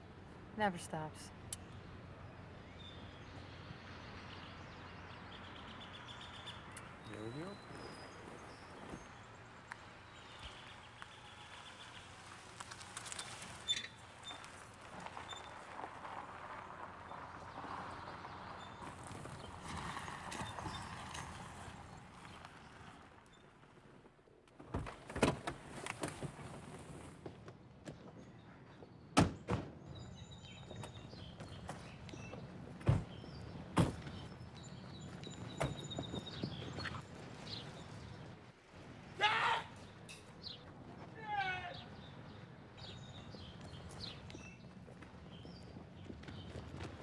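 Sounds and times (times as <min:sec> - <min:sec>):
faint street noise: 0:00.0 - 0:47.0.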